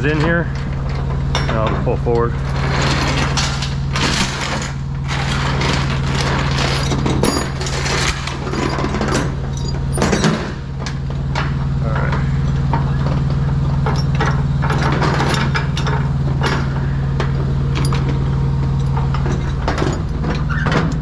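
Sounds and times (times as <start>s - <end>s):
metal chains clinking: 0.0s - 10.6s, 11.9s - 20.6s
steady low hum: 0.0s - 21.0s.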